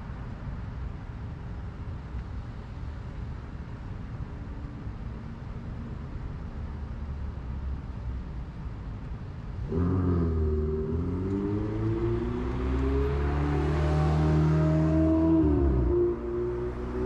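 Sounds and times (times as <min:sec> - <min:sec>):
vehicle accelerating past: 0:09.7 - 0:17.0.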